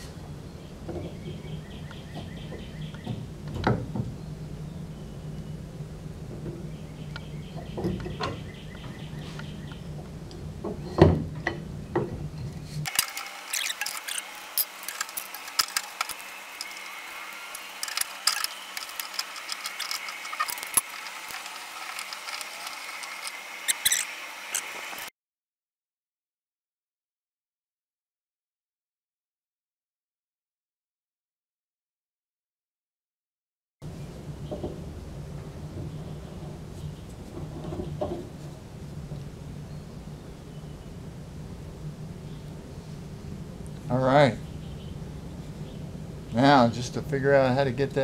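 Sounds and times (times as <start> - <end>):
low hum: 0.0 - 25.1, 33.8 - 47.4
metal threads clicking and scraping: 12.9 - 25.0.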